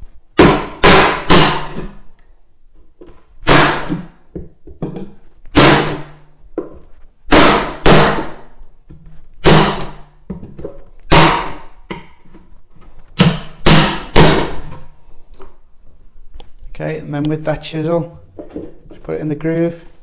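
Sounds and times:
hammer striking metal chisel: 0:00.4 - 0:02.0, 0:07.3 - 0:08.4, 0:11.1 - 0:12.1, 0:13.2 - 0:14.7.

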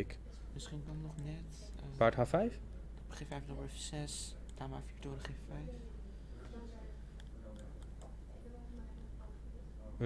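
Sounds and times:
computer mouse clicks: 0:07.2 - 0:08.2.

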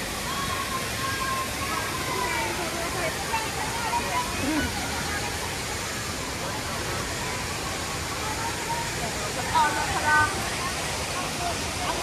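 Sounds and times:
crowd chatter: 0:00.0 - 0:12.0
waterfall rushing: 0:00.0 - 0:12.0.

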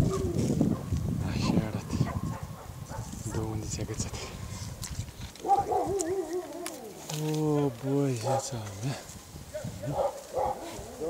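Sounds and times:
dog whining: 0:05.4 - 0:07.0.

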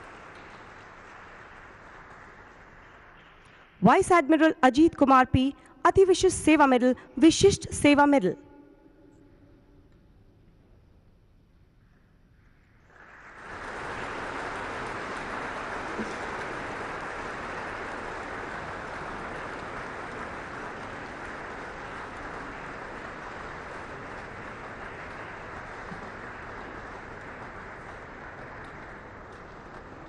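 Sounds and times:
audience applauding: 0:00.0 - 0:03.8, 0:12.6 - 0:30.0.

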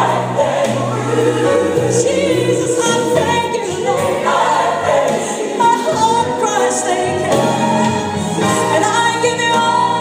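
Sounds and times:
choir singing gospel music: 0:00.0 - 0:10.0.

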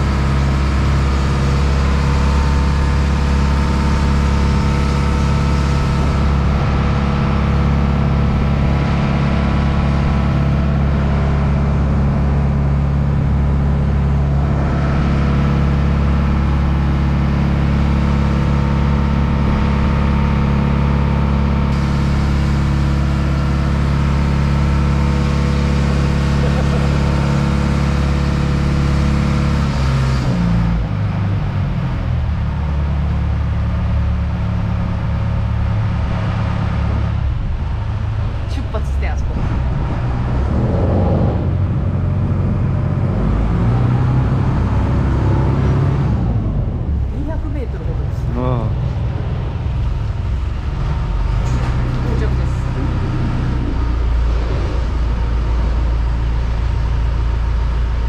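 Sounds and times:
boat diesel engine running: 0:00.0 - 0:58.0.

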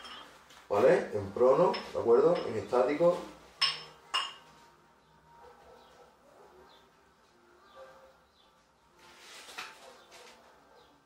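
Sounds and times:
dumbbells clinking together: 0:03.6 - 0:04.5.

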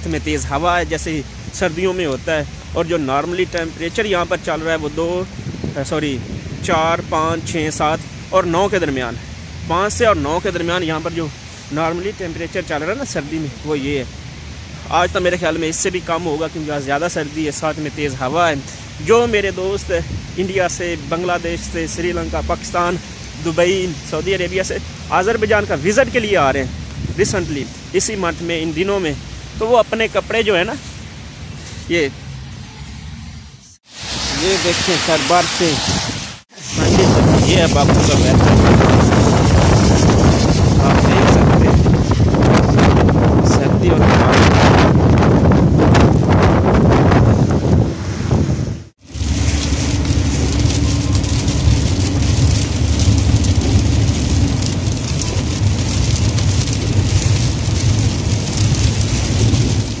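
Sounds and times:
tyre hiss on wet road: 0:00.0 - 0:43.1, 0:48.9 - 1:00.0
wind buffeting microphone: 0:01.0 - 0:09.9, 0:23.0 - 0:28.2, 0:34.1 - 1:00.0
low car hum: 0:44.1 - 1:00.0.

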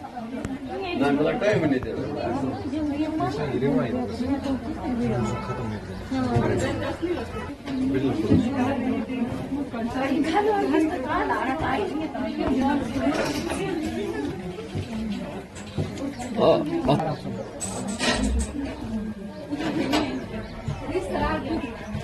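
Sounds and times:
overlapping chatter of voices: 0:00.0 - 0:22.0.

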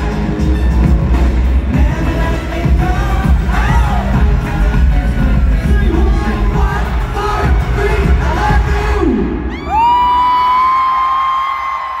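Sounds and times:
crowd: 0:00.0 - 0:12.0
pop music over sound system: 0:00.0 - 0:12.0.

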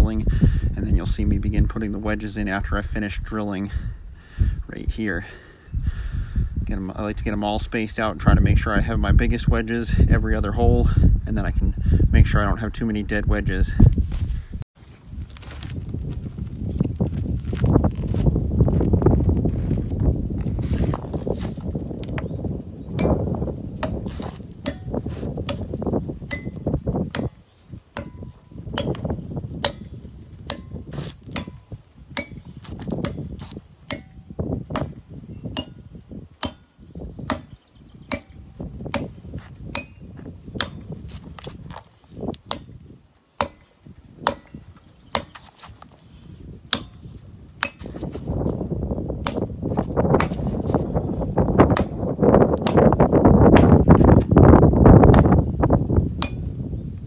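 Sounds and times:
hammer striking steel wedges: 0:23.0 - 0:41.0, 0:42.5 - 0:42.8, 0:43.4 - 0:45.5, 0:46.7 - 0:48.0, 0:49.2 - 0:49.5, 0:51.7 - 0:52.0, 0:55.1 - 0:55.4, 0:56.2 - 0:56.5.

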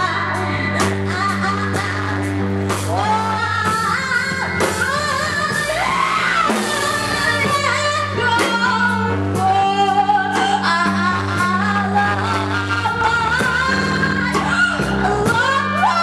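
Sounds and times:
bass guitar: 0:00.0 - 0:16.0
drums: 0:00.0 - 0:16.0
person singing: 0:00.0 - 0:16.0.

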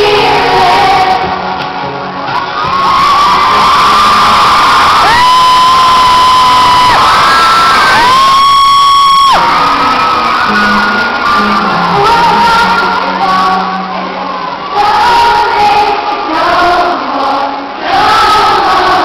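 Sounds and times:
crowd cheering and screaming: 0:00.0 - 0:19.0
live music: 0:00.0 - 0:19.0.

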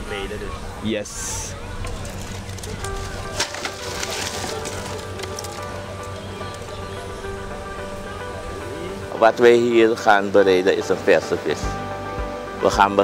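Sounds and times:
music with held tones: 0:01.7 - 0:13.0.

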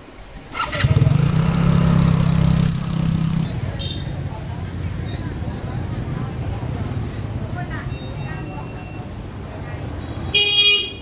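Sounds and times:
motorbike engine running: 0:00.5 - 0:03.7.

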